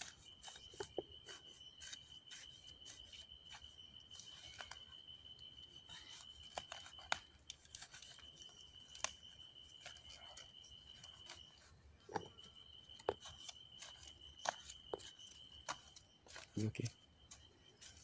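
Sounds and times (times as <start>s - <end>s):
insects chirring: 0.0s - 18.0s.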